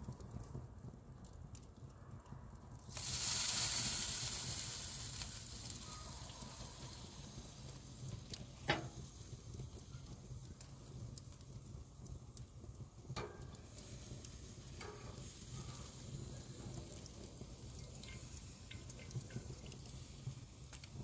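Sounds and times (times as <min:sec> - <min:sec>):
glaze sizzling on hot pan: 0:02.8 - 0:21.0.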